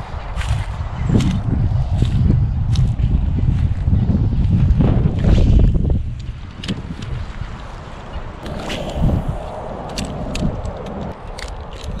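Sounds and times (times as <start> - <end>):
gusty wind buffeting microphone: 0.0 - 12.0.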